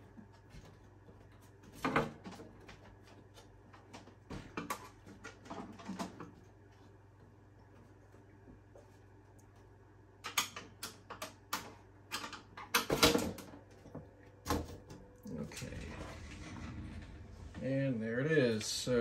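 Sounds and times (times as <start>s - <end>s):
low steady hum: 0.0s - 19.0s
scraping rustle: 15.5s - 17.9s.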